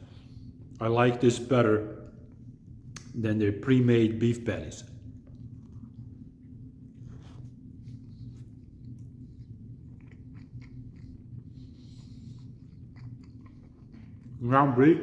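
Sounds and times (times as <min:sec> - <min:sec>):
steady low hum: 0:00.0 - 0:15.0
wet mouth clicks: 0:02.9 - 0:03.2
person chewing a burger: 0:05.0 - 0:14.6.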